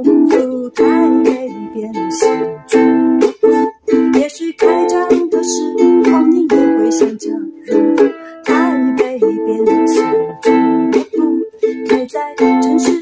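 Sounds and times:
ukulele strumming: 0.0 - 13.0.

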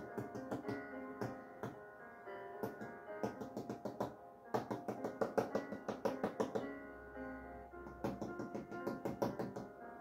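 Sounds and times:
soft instrumental music: 0.0 - 10.0.

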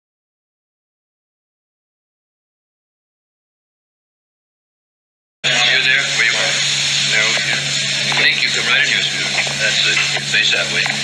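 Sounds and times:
high whine: 5.4 - 11.0
indistinct chatter of voices: 5.4 - 11.0
low hum: 5.4 - 11.0
recording hiss: 5.4 - 11.0.

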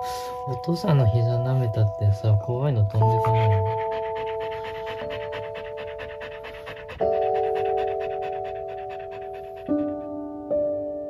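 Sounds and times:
soft bell-like chime music: 0.0 - 3.2
dog panting fast: 2.9 - 10.3.

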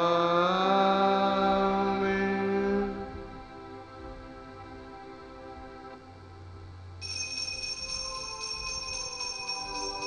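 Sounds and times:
sustained instrumental music: 1.0 - 10.0.

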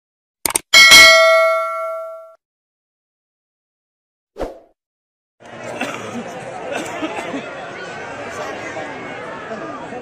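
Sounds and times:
notification bell chime: 0.8 - 2.4.

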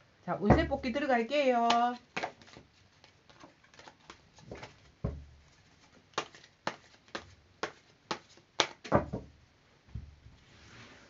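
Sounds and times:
cards being shuffled: 1.6 - 4.9, 5.6 - 8.9.

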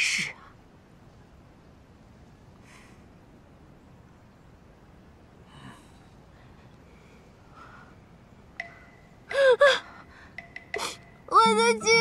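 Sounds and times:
woman crying out: 9.3 - 9.9
woman wailing: 9.3 - 9.9.

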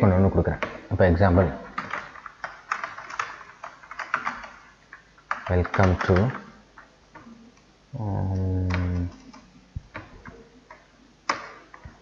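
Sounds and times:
computer keyboard key clicks: 1.8 - 4.6, 8.7 - 12.0.

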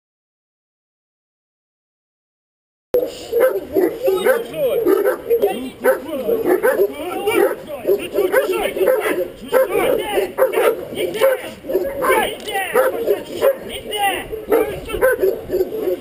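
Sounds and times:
dog barking rapidly: 3.0 - 16.0.

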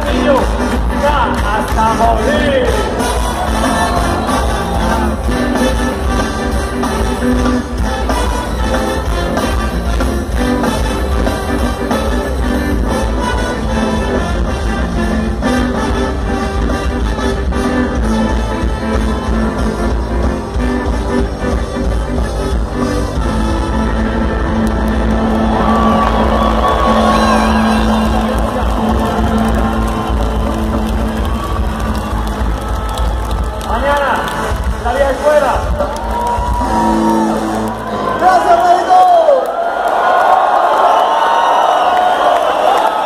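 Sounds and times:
ska band playing live: 0.0 - 33.4
crowd cheering and whooping: 2.5 - 5.7, 24.4 - 34.5, 35.4 - 43.0.

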